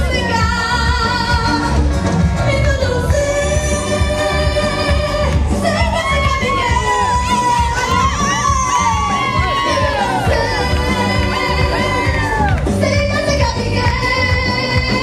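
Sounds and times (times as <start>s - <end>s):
dance music over loudspeakers: 0.0s - 15.0s
person singing: 2.5s - 15.0s
crowd cheering and whooping: 3.6s - 13.1s.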